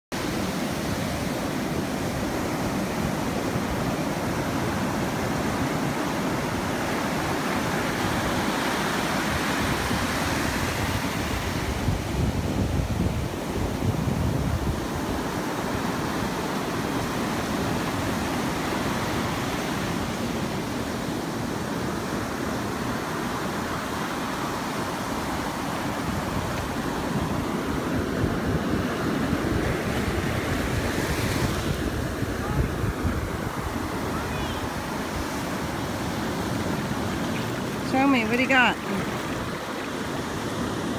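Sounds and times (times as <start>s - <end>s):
ocean surf rushing: 0.2s - 40.9s.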